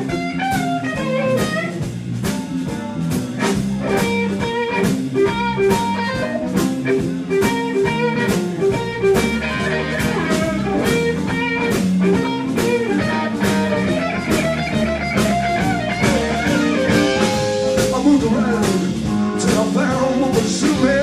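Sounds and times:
bass: 0.0s - 21.0s
drum kit: 0.0s - 21.0s
electric guitar: 0.0s - 21.0s.

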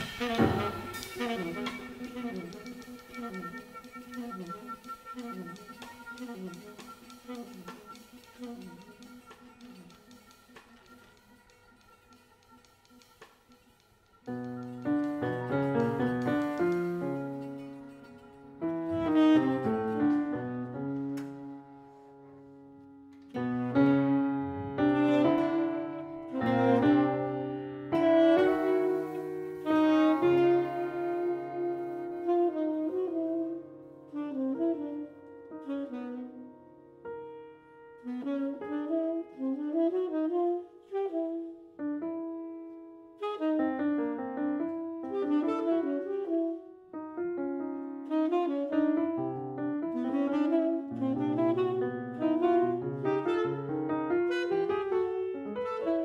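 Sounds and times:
jazz piano saxophone and cello: 0.0s - 56.0s.

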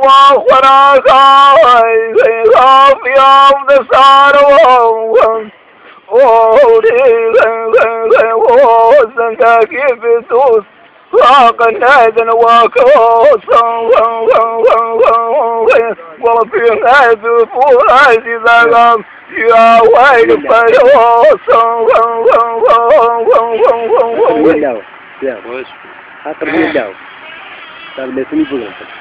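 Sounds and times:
man singing unaccompanied: 0.0s - 24.9s.

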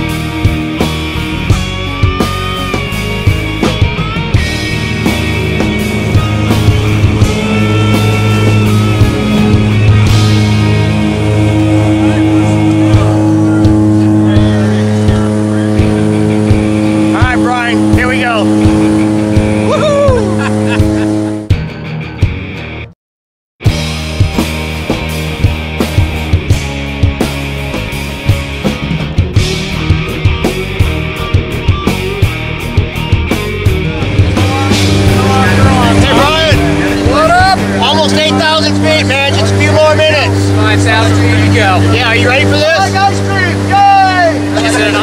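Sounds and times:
plane engine droning: 0.0s - 21.5s, 29.4s - 45.0s
plane engines droning in cabin: 10.5s - 21.4s
voices: 10.9s - 21.0s, 33.8s - 45.0s
person calling out: 19.7s - 20.5s.

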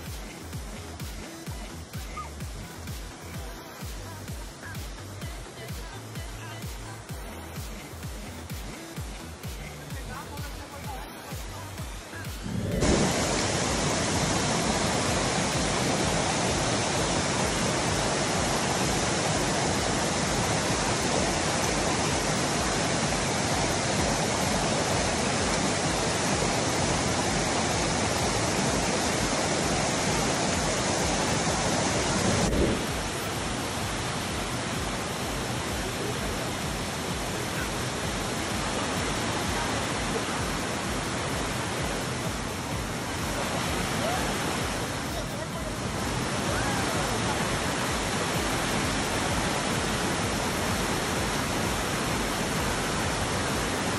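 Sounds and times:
waterfall rushing over rock: 0.0s - 53.9s.

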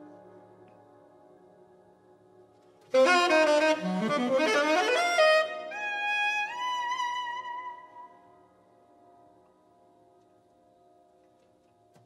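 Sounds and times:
tenor saxophone long note: 2.9s - 5.8s.

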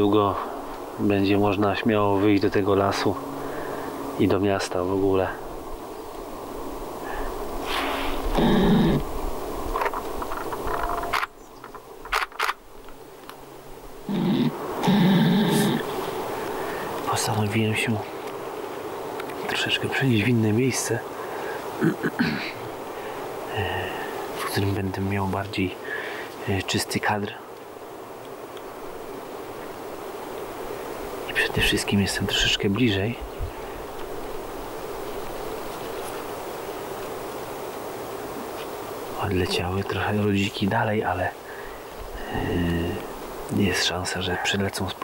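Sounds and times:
faint outdoor hiss: 0.0s - 45.0s
flying insect buzzing: 0.4s - 24.8s, 27.5s - 43.8s.

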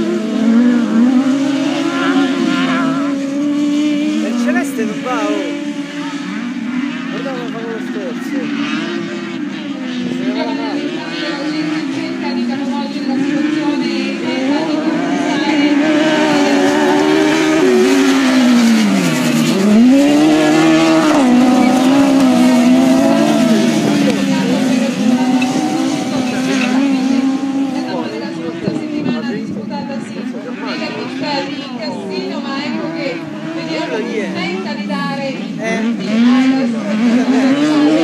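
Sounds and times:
race car engines revving: 0.0s - 38.0s.

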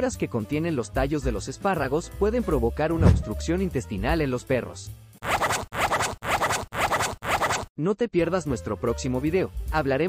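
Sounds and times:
scratchy static bursts: 5.2s - 7.7s.

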